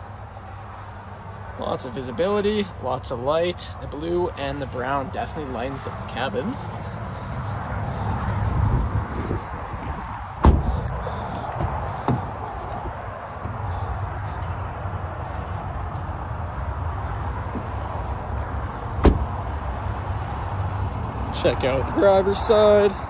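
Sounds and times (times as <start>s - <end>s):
low outdoor rumble: 0.0s - 23.0s
car door shutting thump: 10.4s - 10.8s, 19.0s - 19.3s.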